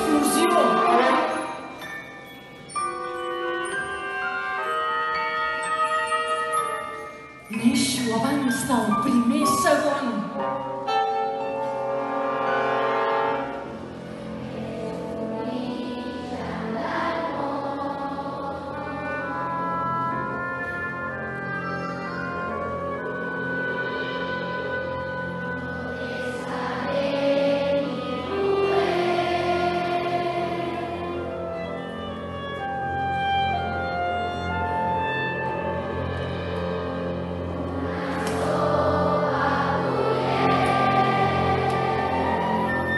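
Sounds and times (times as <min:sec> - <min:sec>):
live ensemble music: 0:00.0 - 0:42.9.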